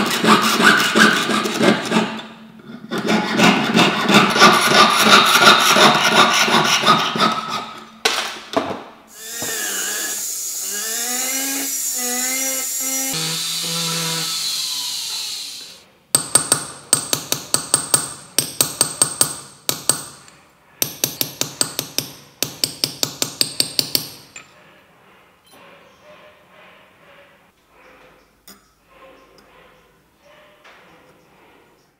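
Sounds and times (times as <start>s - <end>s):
hammer tapping steel punch: 16.2s - 24.2s.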